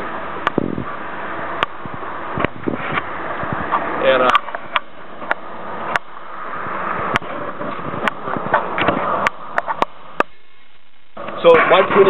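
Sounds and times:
road traffic rush: 0:00.0 - 0:12.0.

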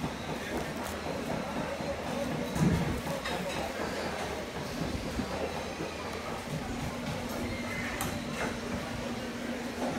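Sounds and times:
background chatter of diners: 0:00.0 - 0:09.9.

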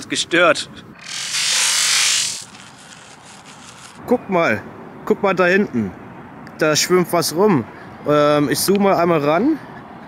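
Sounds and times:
faint outdoor background: 0:00.0 - 0:10.0
liquid sprayed through lips: 0:01.0 - 0:04.0.

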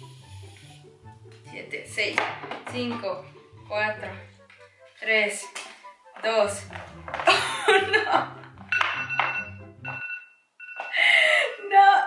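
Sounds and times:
timer alarm ringing: 0:08.7 - 0:11.0.

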